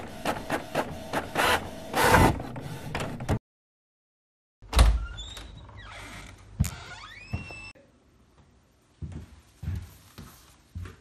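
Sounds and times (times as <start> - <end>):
door hinges creaking: 4.7 - 7.8.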